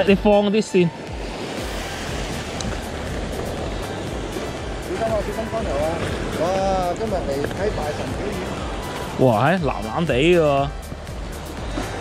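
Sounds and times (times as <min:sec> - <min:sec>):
sea surge washing over rocks: 0:00.9 - 0:10.0.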